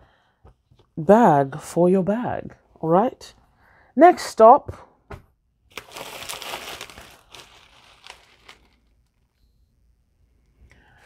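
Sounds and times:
packaging rustling: 5.7 - 9.4.

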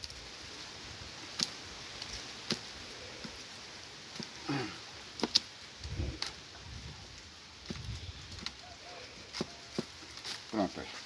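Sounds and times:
basket strands clicking and creaking: 0.0 - 11.0
wind rumble on microphone: 5.8 - 8.5.

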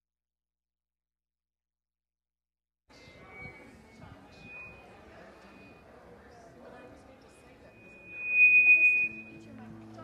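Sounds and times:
high-pitched steady tone: 3.2 - 5.9, 7.6 - 9.5.

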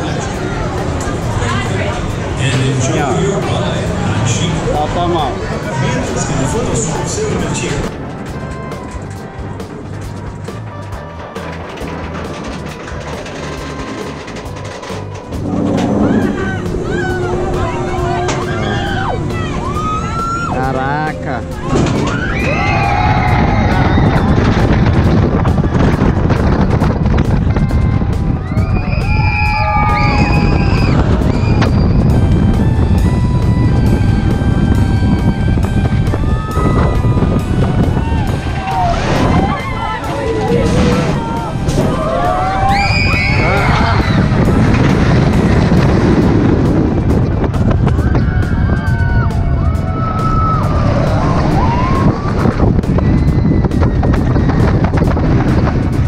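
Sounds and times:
roller coaster track roar: 0.0 - 56.0
wind rushing: 14.3 - 56.0
riders screaming: 15.9 - 20.6, 37.9 - 44.4, 48.0 - 54.0.

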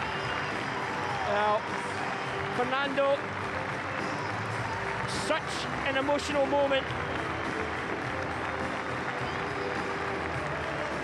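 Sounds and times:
stadium crowd applauding: 0.0 - 11.0.

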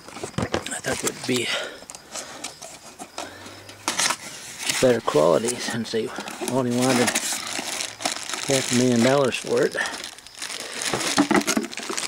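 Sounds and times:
cardboard scrapes and rustles: 3.8 - 9.2.

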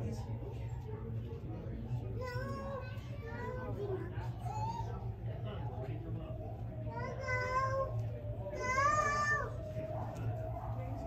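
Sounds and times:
murmur of voices: 0.0 - 11.0
steady low hum: 0.0 - 11.0.

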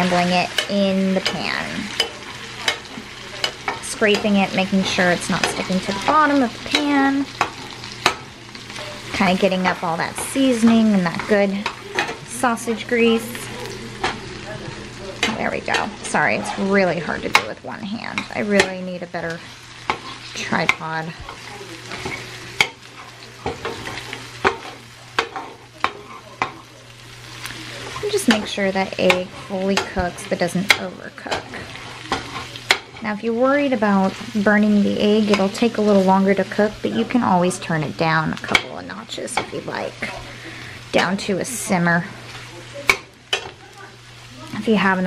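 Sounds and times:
spatula scraping and knocking pan: 0.0 - 26.6, 27.4 - 40.2, 42.3 - 43.6
food sizzling in a frying pan: 0.0 - 45.0.

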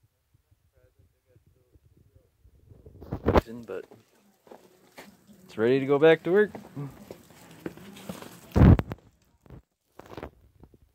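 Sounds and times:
handling noise on microphone: 2.6 - 5.3, 6.4 - 10.9.

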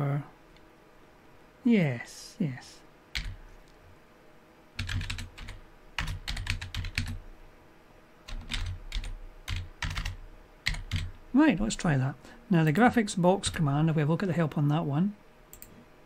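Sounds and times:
computer keyboard typing: 3.2 - 3.4, 4.8 - 7.2, 8.3 - 11.2, 15.5 - 15.7.

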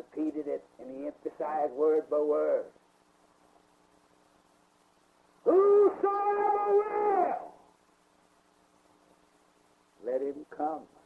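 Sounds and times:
man preaching: 0.0 - 2.8, 5.4 - 7.6
faint steady hum: 0.0 - 11.0.

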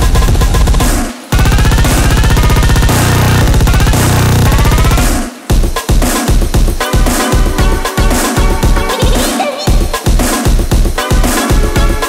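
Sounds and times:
gliding synth lines: 0.0 - 5.3
fast chopped drum hits: 0.0 - 12.0
deep held bass note: 1.4 - 5.2.

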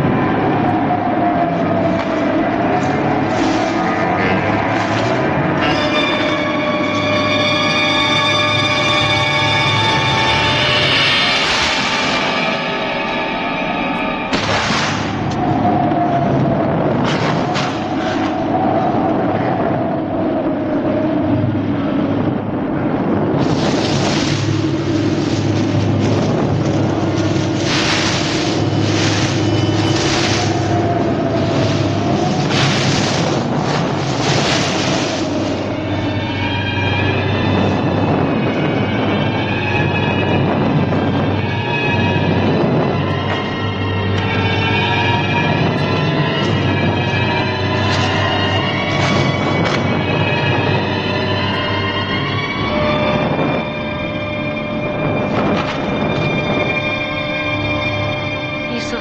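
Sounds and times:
eerie sustained film score tones: 0.0 - 59.0
wavering high tone over low drone: 0.0 - 59.0.

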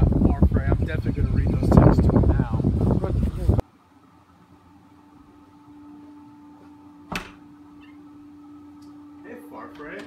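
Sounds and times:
faint steady hum: 3.6 - 10.0.

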